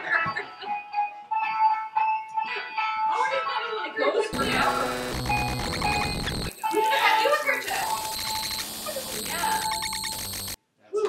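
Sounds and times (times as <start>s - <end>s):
electronic gadget tune: 4.4s - 10.6s.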